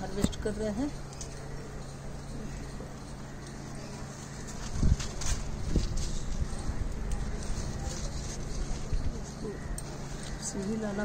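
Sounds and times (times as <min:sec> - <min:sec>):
leaves rustling: 0:00.0 - 0:11.0.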